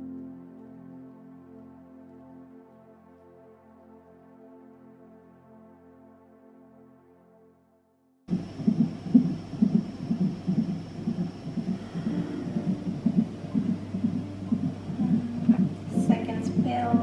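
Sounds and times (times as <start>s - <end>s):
heartbeat through doppler speaker: 8.3s - 17.0s.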